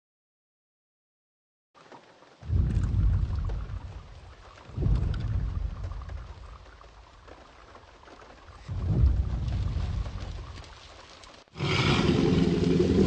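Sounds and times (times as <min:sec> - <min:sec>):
deep low rumbles: 0:02.4 - 0:07.8, 0:08.4 - 0:11.0.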